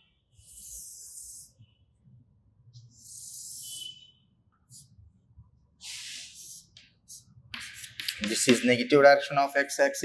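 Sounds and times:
chalk scraping on blackboard: 0:00.4 - 0:01.6, 0:05.8 - 0:08.6.

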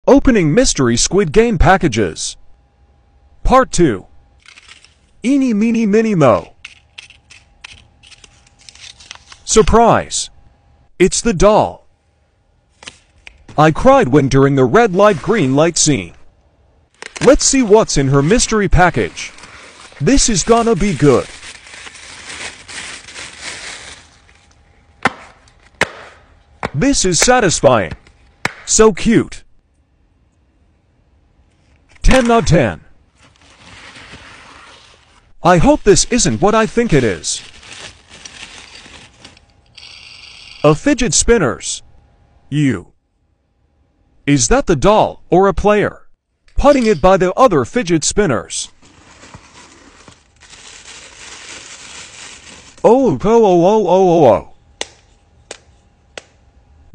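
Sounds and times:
tissue paper rustling: 0:18.2 - 0:24.5, 0:33.1 - 0:39.5, 0:48.8 - 0:52.8.

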